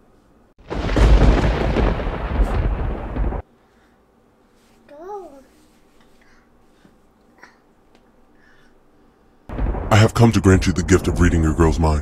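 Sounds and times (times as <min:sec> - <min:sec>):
thunder-like rumble with crackle: 0:00.6 - 0:03.4, 0:09.5 - 0:12.0.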